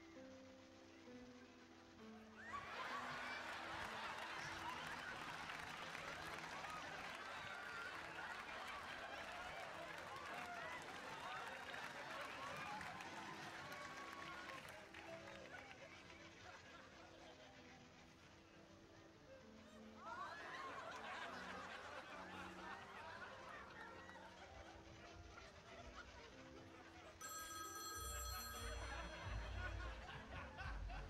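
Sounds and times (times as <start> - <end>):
soft music with held notes: 0.0 - 31.0
studio audience voices: 2.5 - 17.9, 19.8 - 26.1
telephone bell ringing: 27.2 - 29.8.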